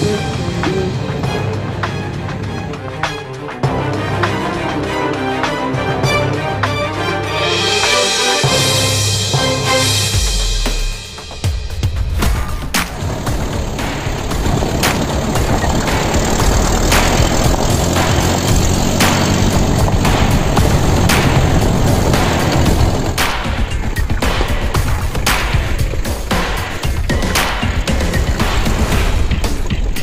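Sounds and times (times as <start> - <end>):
music with drum-kit beat: 0.0 - 30.0.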